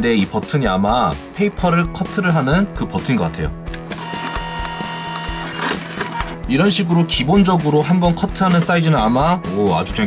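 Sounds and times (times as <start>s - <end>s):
background music: 0.0s - 10.0s
printer feed motor whine: 3.9s - 6.2s.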